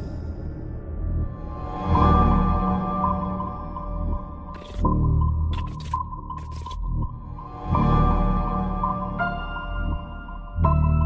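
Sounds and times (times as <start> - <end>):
suspenseful background music: 0.0 - 11.0.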